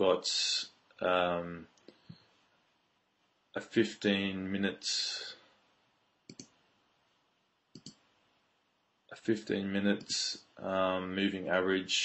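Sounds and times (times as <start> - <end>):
mouse button clicks: 7.8 - 8.0.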